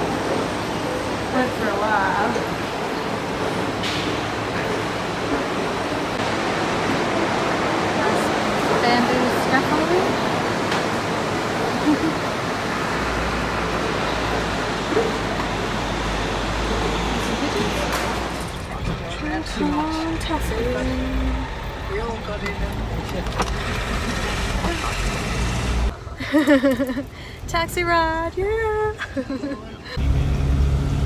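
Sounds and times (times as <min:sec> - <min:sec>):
city street noise: 0:00.0 - 0:31.0
people's voices: 0:16.8 - 0:25.3.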